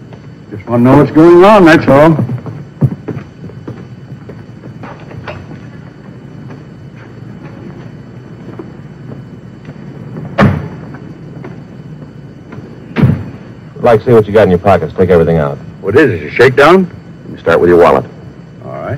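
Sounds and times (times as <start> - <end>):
car door slamming shut: 10.4 - 10.8.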